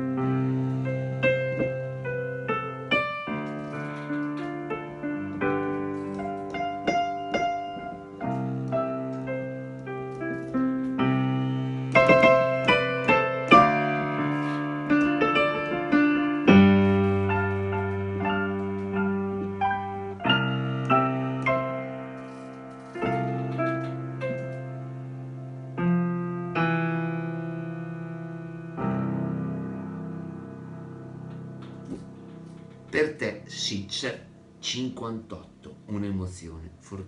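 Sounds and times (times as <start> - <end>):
solo piano: 0.0 - 36.4.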